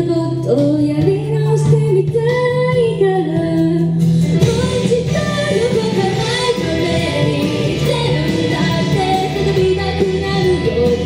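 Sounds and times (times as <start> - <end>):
backing music: 0.0 - 11.0
woman singing into microphone: 0.0 - 11.0.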